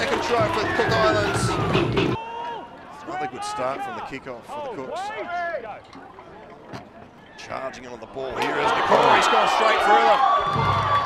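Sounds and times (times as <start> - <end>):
low background crowd noise: 0.0 - 11.0.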